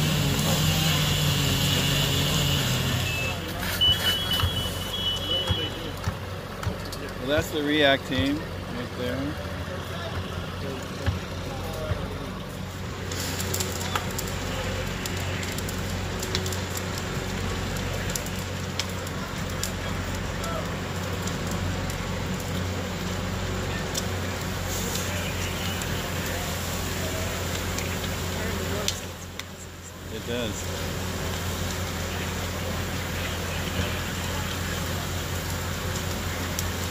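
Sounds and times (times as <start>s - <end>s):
fire crackling and popping: 0.0s - 36.9s
fire engine pump drone: 0.0s - 36.9s
fire rushing noise: 0.0s - 36.9s.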